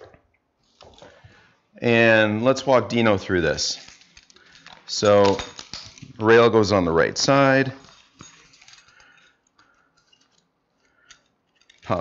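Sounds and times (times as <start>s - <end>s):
straps rustling: 3.3s - 6.2s, 7.3s - 12.0s.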